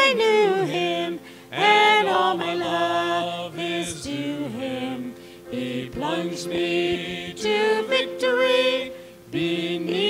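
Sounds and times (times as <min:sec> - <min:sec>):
group singing a gospel hymn: 0:00.0 - 0:10.0.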